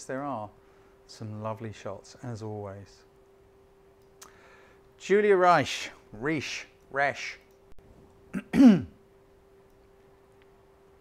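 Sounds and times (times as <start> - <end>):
man clearing his throat: 8.3 - 9.0.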